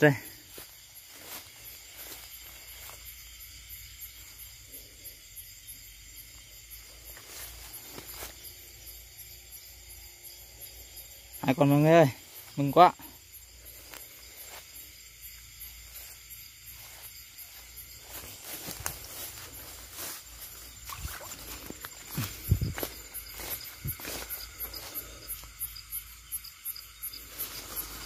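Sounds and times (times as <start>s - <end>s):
footsteps through brush: 0.0s - 4.4s, 6.8s - 8.7s, 13.5s - 28.0s
crickets chirping: 0.0s - 28.0s.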